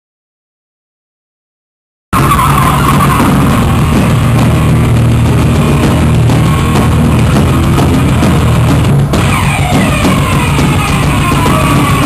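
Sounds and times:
live rock band playing: 2.2 - 12.0.

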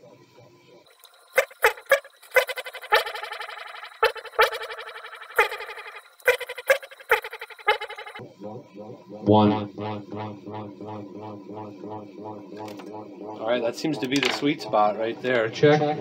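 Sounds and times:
echoing spoken words: 12.2 - 16.0.

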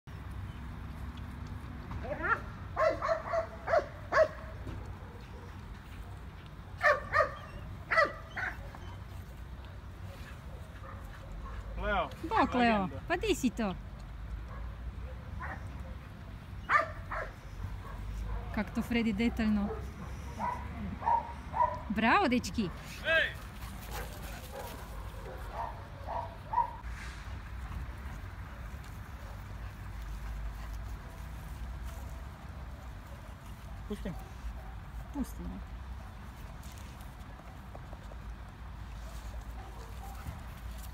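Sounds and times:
dogs playing: 14.0 - 26.8.

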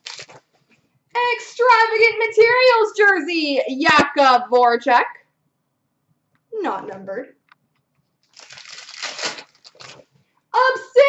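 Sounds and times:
wrapper crinkling: 0.0 - 0.6, 8.2 - 10.2.

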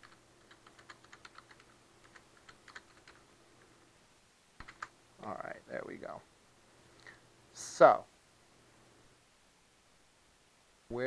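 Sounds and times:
typing on computer keyboard: 0.0 - 3.3, 4.6 - 4.9
man speaking: 5.2 - 6.3, 7.6 - 8.1.

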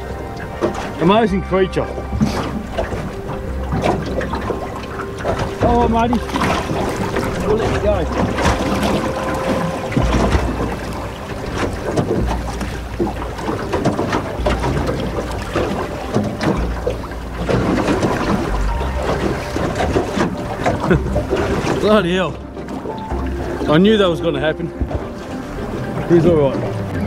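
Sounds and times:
muffled underwater water rushing: 0.0 - 27.0.

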